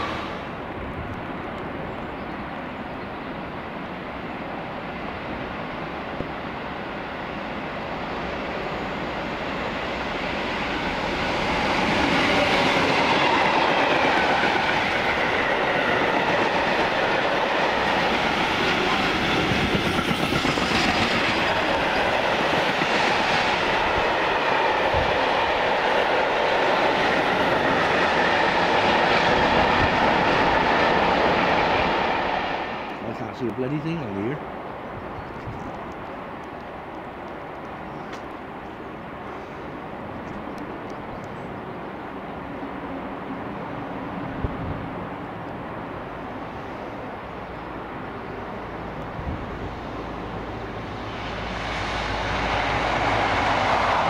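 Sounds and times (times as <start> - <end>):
freight train passing: 0.0 - 54.0.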